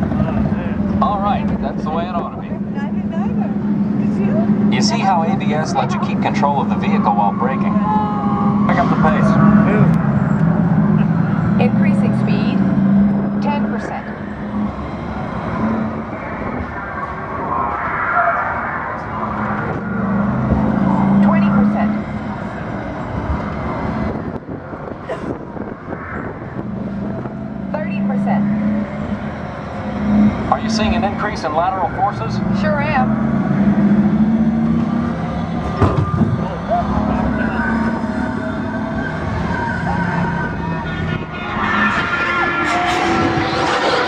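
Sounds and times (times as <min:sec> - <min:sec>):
low hum: 0:00.0 - 0:44.0
ride vehicle wheels rumbling: 0:00.0 - 0:44.0.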